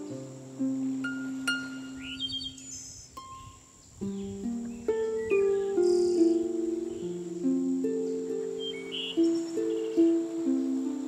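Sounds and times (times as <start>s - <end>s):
harp plucked notes: 0.0s - 11.0s.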